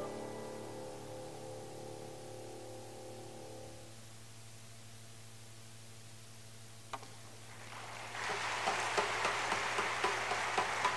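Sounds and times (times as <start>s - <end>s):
audience applause: 7.4s - 10.9s.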